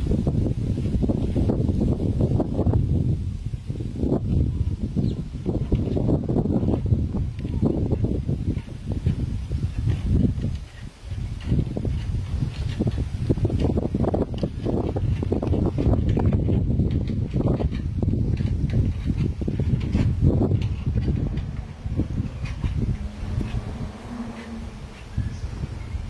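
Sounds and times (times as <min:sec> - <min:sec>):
wind buffeting microphone: 0:00.0 - 0:26.0
porcupine gnawing on wood: 0:07.4 - 0:25.4.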